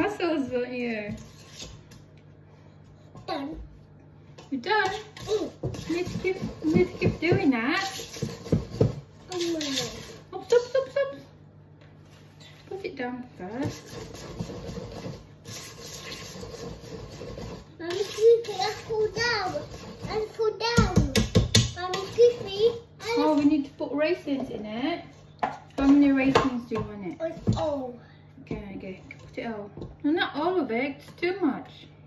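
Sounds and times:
woman talking: 0:00.0 - 0:01.2, 0:04.5 - 0:05.1, 0:05.9 - 0:08.0, 0:10.3 - 0:11.3, 0:12.7 - 0:13.8, 0:23.2 - 0:25.2, 0:25.8 - 0:27.2, 0:28.4 - 0:32.0
batter mixed in steel bowl: 0:00.0 - 0:02.2, 0:04.3 - 0:11.0, 0:12.0 - 0:27.8
child talking: 0:03.2 - 0:03.7, 0:05.2 - 0:05.6, 0:09.3 - 0:10.1, 0:17.8 - 0:23.6, 0:27.1 - 0:28.2.

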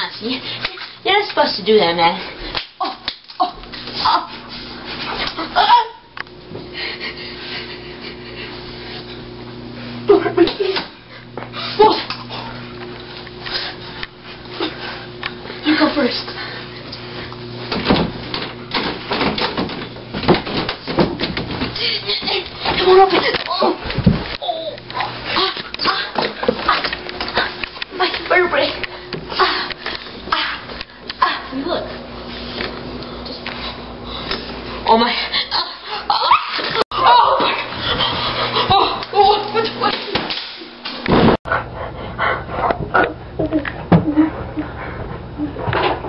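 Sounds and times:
bumps and rustling: 0:17.3 - 0:28.4.

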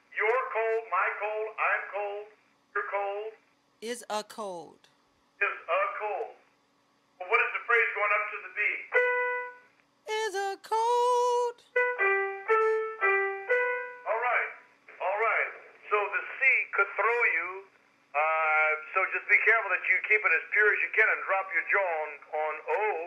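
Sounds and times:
man singing vocal exercise: 0:03.8 - 0:04.7, 0:10.1 - 0:11.6.

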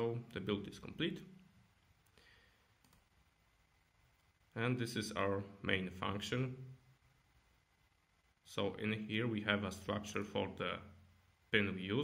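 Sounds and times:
faint clicks: 0:02.8 - 0:03.1.

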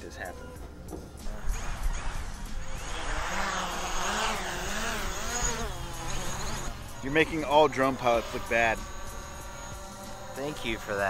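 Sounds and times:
drone propellers buzzing: 0:00.4 - 0:11.0.

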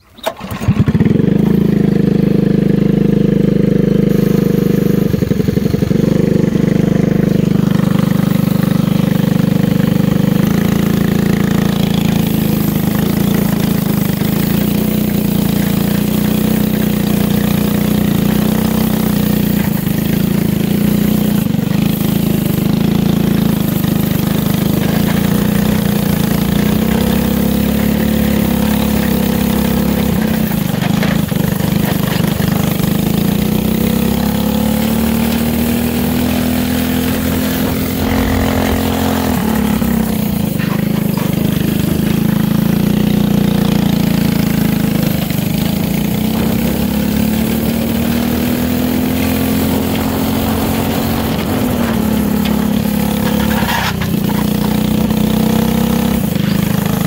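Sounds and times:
go-kart engine running: 0:00.0 - 0:57.0.

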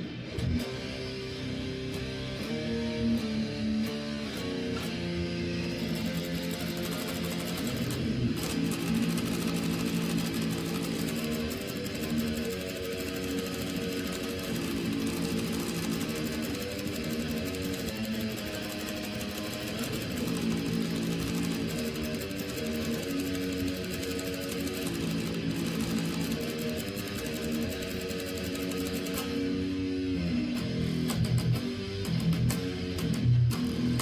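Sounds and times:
electric guitar sustained chords: 0:00.0 - 0:34.0.

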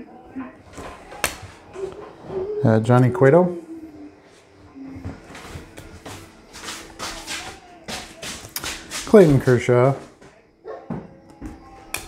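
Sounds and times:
card stock snapping: 0:00.8 - 0:01.6.

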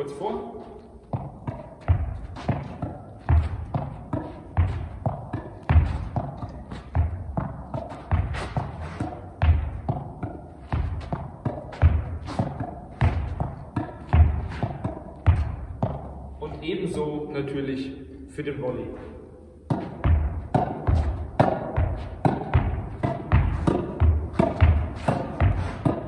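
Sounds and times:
racket hitting tennis ball: 0:00.0 - 0:16.6, 0:18.9 - 0:26.0
ball bouncing on court: 0:00.3 - 0:16.7, 0:19.6 - 0:26.0
ball rebounding off wall: 0:00.8 - 0:16.4, 0:19.6 - 0:26.0.

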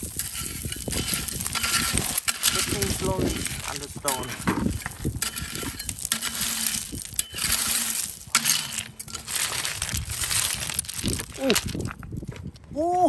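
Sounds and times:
hand fork raking gravel: 0:00.0 - 0:12.2
stones crunching and clinking: 0:00.0 - 0:12.5
person saying ooh: 0:12.7 - 0:13.0.

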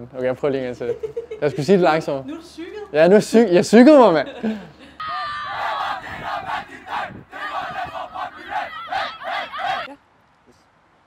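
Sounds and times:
group shout: 0:05.0 - 0:09.9
rhythmic shouted calls: 0:05.0 - 0:10.0.

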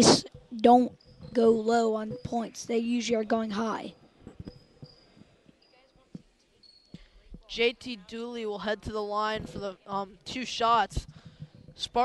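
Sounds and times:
soft thuds: 0:10.9 - 0:12.0.

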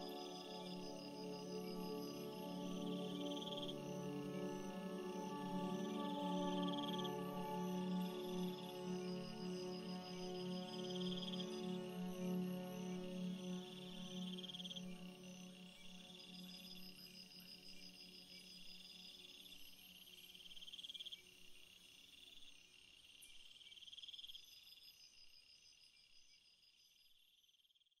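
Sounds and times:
soft ambient music: 0:00.0 - 0:22.0
crickets chirping in trills: 0:00.0 - 0:27.9.

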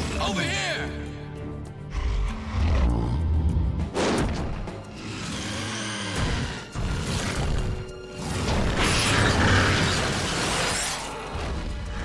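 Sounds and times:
dramatic cartoon music: 0:00.0 - 0:12.0
deep rumbling monster growl: 0:01.9 - 0:07.8.

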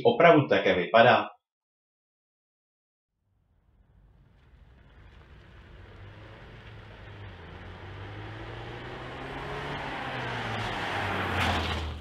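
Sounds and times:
car engine passing: 0:03.5 - 0:12.0
tyre hiss on wet road: 0:04.4 - 0:08.2.

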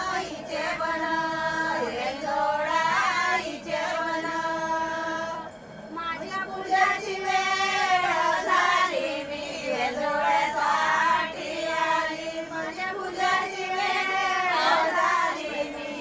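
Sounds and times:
women singing together: 0:00.0 - 0:16.0.

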